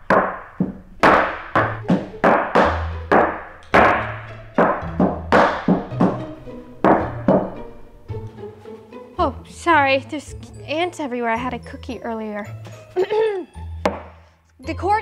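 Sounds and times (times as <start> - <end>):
gavel banging on wooden bench: 0.0 - 7.6, 13.8 - 14.2
background music with bass: 1.3 - 15.0.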